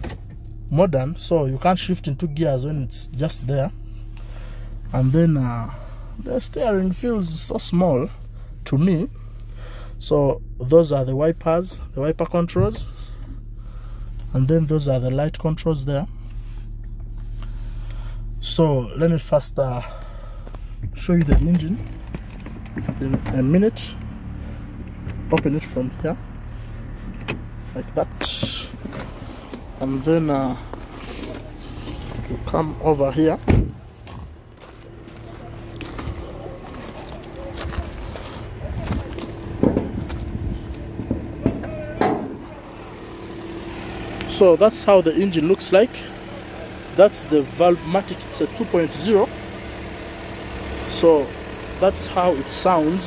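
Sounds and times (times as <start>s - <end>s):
car engine idling: 0.0s - 53.0s
car bonnet knocks and clunks: 33.4s - 34.3s, 38.8s - 42.4s.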